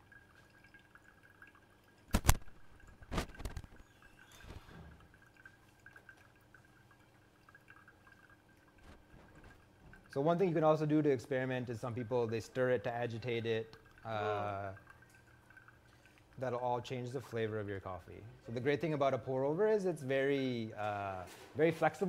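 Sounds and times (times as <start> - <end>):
water pouring onto coffee grounds: 0.0 - 22.0.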